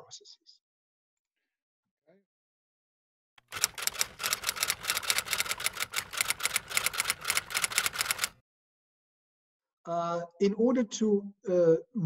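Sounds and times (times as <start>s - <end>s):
typewriter keys clacking: 3.4s - 8.3s.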